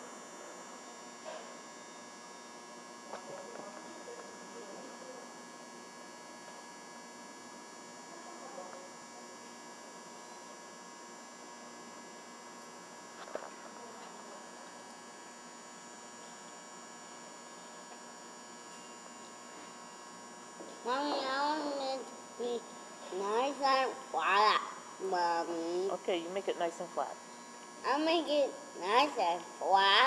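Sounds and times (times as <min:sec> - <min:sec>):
steady electrical hum: 0:00.0 - 0:30.0.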